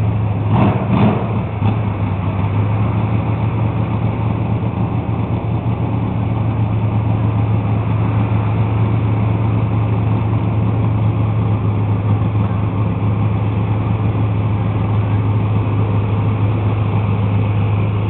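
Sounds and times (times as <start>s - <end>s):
truck engine running hard: 0.0s - 18.0s.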